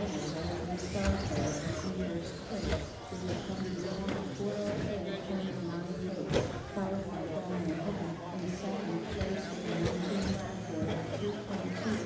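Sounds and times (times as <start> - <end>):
people talking indistinctly: 0.0 - 12.0.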